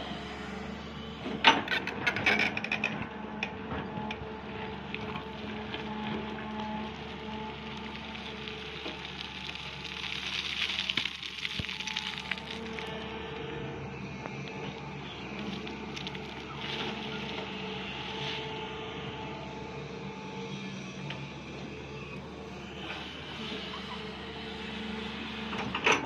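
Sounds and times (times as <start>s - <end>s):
excavator engine and hydraulics: 0.0s - 26.0s.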